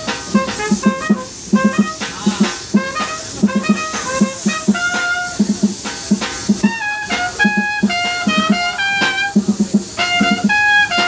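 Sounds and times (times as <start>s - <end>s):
low rhythmic beat: 0.0s - 11.0s
trumpet melody: 0.0s - 11.0s.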